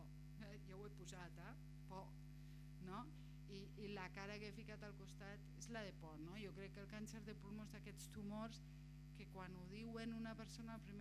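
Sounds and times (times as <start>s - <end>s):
woman speaking: 0.0s - 2.2s, 2.8s - 11.0s
low electrical mains hum: 0.0s - 11.0s.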